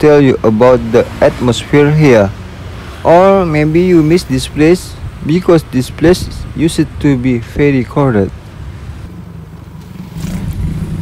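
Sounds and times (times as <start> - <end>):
motorbike engine approaching: 9.8 - 11.0.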